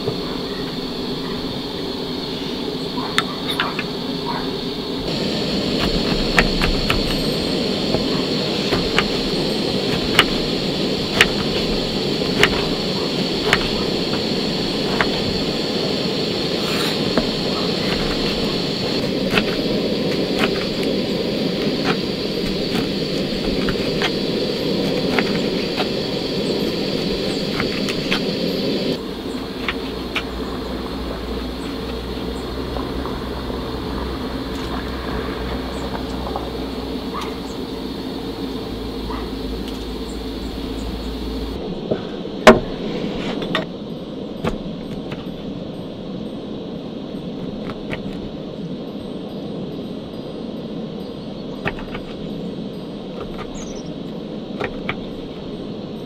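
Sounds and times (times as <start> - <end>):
gas stove burner hiss: 0.0 - 41.8.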